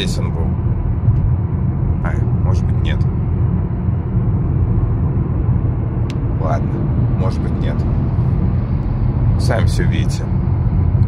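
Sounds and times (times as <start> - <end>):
car road noise: 0.0 - 11.0.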